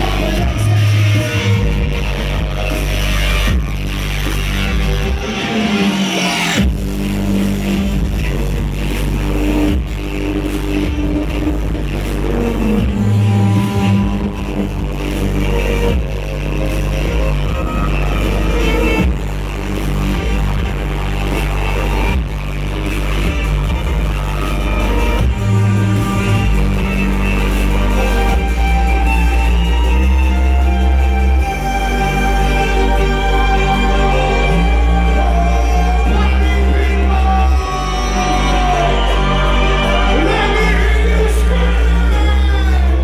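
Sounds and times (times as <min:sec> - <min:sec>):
electronic dance backing track: 0:00.0 - 0:43.0
electric violin bowed: 0:07.6 - 0:43.0.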